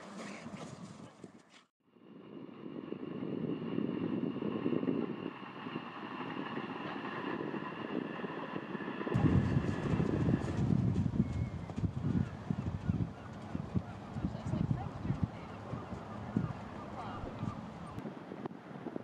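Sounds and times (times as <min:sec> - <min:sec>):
train engine and wheels whine: 0:01.9 - 0:18.8
heavy low train rumble: 0:09.2 - 0:18.0.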